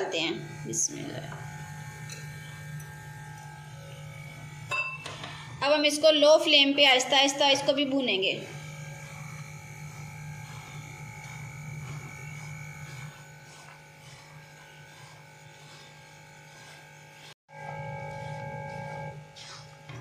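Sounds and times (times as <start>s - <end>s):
buzzing hum of held tones: 0.0s - 20.0s
wooden spatula scraping a wok: 9.4s - 20.0s.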